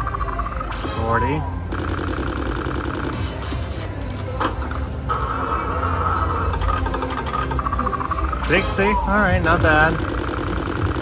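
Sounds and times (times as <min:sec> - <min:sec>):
low steady casino hum: 0:00.0 - 0:11.0.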